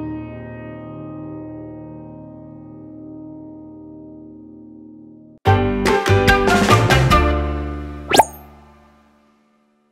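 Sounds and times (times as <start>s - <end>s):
upward-gliding sound effect: 8.1s - 8.7s.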